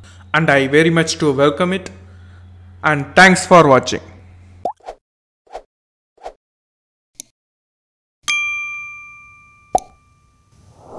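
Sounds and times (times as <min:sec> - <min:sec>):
bell-like ding: 0:08.3 - 0:10.6.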